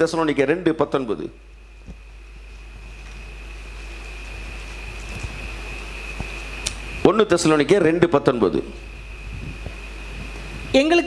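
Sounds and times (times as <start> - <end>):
high-pitched whine: 0.0 - 11.0
low hum and hiss: 0.0 - 11.0.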